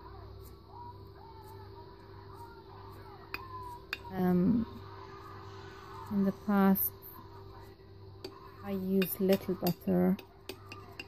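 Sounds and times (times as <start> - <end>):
steady low hum: 0.0 - 11.0
metal spoon mixing crumbs: 1.2 - 6.5, 7.2 - 11.0
spoon clinking against dish: 3.3 - 4.2, 8.2 - 11.0.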